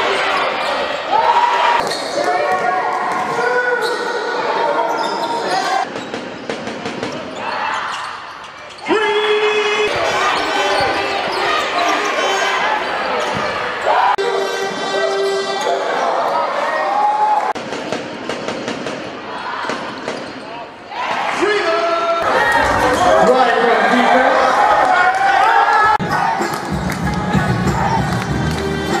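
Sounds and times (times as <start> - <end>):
voices in large hall: 0.0 - 29.0.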